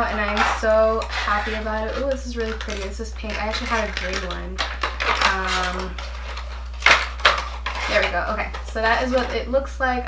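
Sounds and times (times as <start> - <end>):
plastic rustling: 0.0 - 9.5
low steady hum: 0.0 - 10.0.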